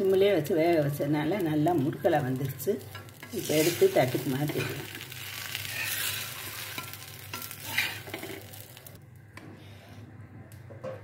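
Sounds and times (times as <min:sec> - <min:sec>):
dosa sizzling on hot griddle: 0:00.0 - 0:09.0.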